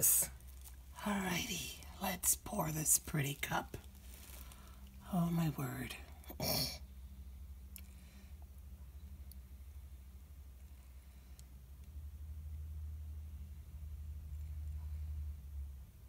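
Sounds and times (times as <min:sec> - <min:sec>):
low steady hum: 0:00.0 - 0:16.0.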